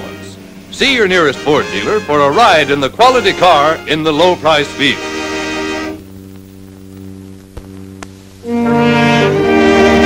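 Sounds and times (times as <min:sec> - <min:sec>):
film soundtrack hum and hiss: 0:00.0 - 0:10.0.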